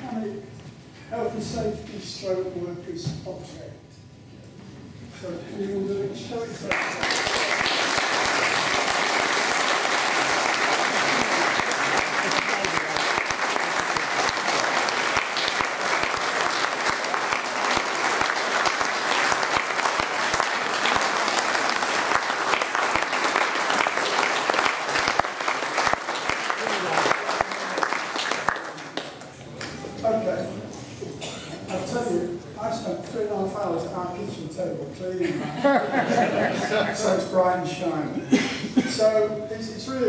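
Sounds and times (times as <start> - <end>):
audience applauding: 6.6 - 29.3.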